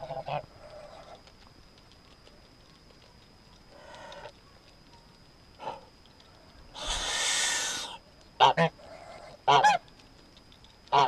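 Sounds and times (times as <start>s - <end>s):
geese honking and hissing: 0.0s - 1.2s, 3.7s - 4.4s, 6.7s - 9.8s.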